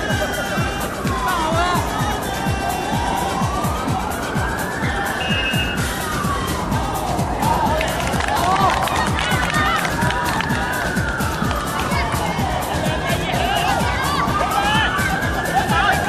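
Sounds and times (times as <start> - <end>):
siren wailing: 0.0 - 7.8, 9.6 - 12.1, 13.0 - 16.0
people shouting: 0.0 - 16.0.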